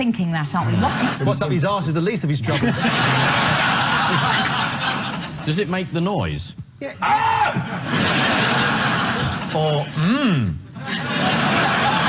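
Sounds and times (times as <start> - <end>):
studio audience laughing: 0.6 - 1.8, 2.4 - 5.8, 7.5 - 10.0, 10.8 - 12.0
held vocal sound: 9.9 - 10.6.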